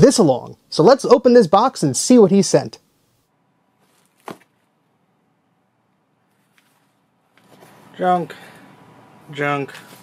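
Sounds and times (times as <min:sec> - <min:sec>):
paper rustling: 0:03.8 - 0:04.7, 0:06.2 - 0:07.8.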